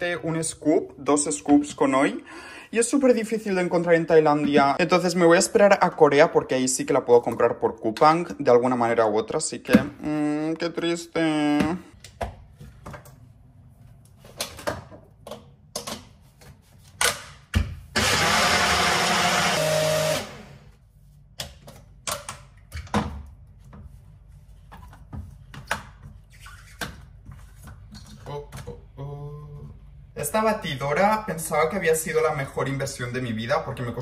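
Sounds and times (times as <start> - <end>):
person talking: 0.0 - 12.0
blender running: 18.0 - 20.7.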